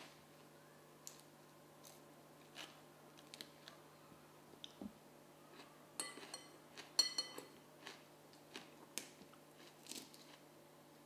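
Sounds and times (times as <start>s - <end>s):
cutlery clinking against a bowl: 6.0s - 7.6s.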